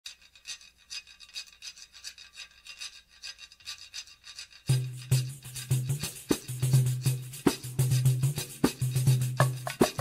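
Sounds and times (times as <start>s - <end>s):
scratchy hand percussion rhythm: 4.2s - 10.0s.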